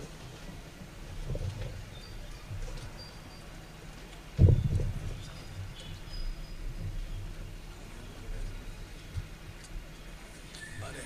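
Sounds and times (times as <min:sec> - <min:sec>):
soft low knocks: 0:00.0 - 0:10.2
low thump: 0:04.4 - 0:05.2.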